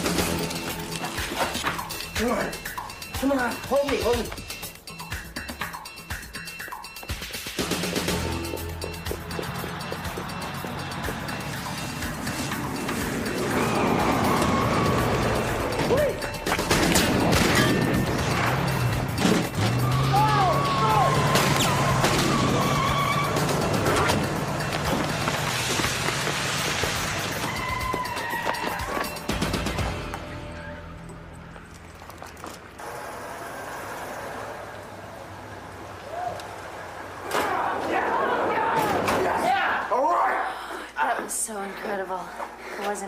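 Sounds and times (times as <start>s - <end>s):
action soundtrack music: 0.0s - 31.0s.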